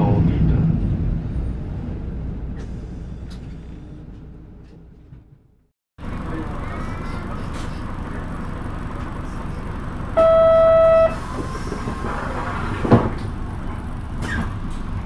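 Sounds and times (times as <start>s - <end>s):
street noise: 0.0s - 15.0s
buses idling: 0.1s - 15.0s
loud horn tone: 10.2s - 11.3s.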